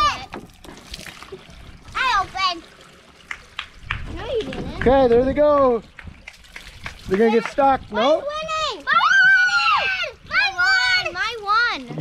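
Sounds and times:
child's voice: 0:00.0 - 0:00.4, 0:02.0 - 0:02.6, 0:08.0 - 0:12.0
water splashing and pouring: 0:00.0 - 0:12.0.

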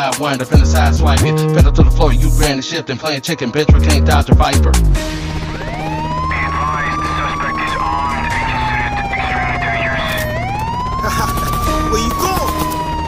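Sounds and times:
hip hop beat: 0:00.0 - 0:10.1
bass line: 0:00.6 - 0:02.6, 0:03.7 - 0:12.2
wailing siren sample: 0:04.9 - 0:13.0.

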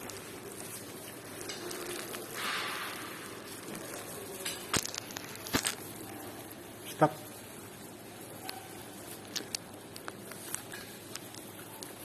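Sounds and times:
gloved hands pulling apart food: 0:00.0 - 0:12.0.

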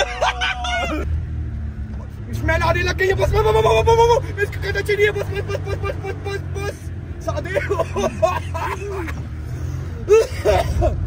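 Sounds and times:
passenger crying out: 0:00.0 - 0:01.1, 0:02.4 - 0:11.0
car engine and road drone: 0:00.0 - 0:11.0.

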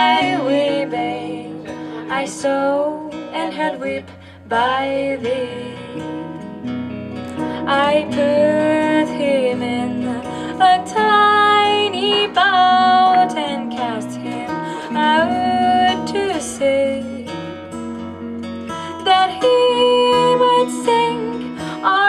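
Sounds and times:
woman singing a ballad: 0:00.0 - 0:17.7, 0:18.7 - 0:22.0
acoustic and electric guitar: 0:00.0 - 0:22.0.

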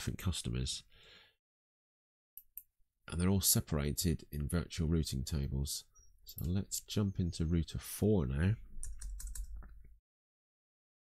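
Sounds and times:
computer keyboard typing: 0:08.8 - 0:09.8.

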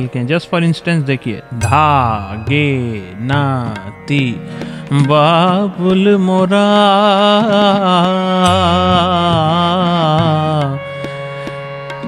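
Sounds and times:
harmonium: 0:00.0 - 0:12.0
man singing: 0:01.4 - 0:11.1.

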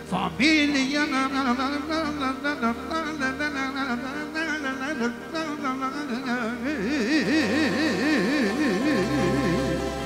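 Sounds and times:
man singing with vibrato: 0:00.0 - 0:10.0.

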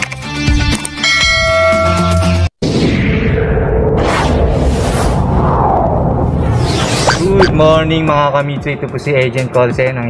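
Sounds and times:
bell-like chime: 0:01.0 - 0:02.5.

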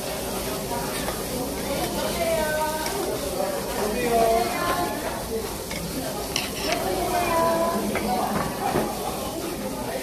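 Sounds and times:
meat sizzling on a grill: 0:00.0 - 0:10.0.

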